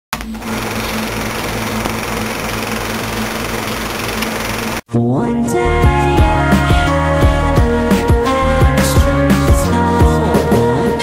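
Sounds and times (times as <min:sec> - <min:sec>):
film projector whirring and rattling: 0:00.2 - 0:04.8.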